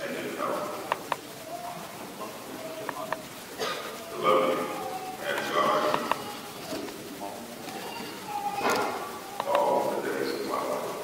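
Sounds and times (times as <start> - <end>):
man speaking into a microphone: 0.0 - 1.1, 4.0 - 7.6, 8.6 - 11.0.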